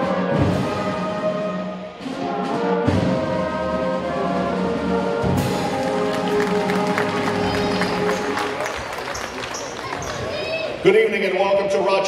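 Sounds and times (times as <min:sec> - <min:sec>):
murmur of a crowd: 0:02.9 - 0:12.0
man speaking over loudspeaker: 0:10.8 - 0:12.0.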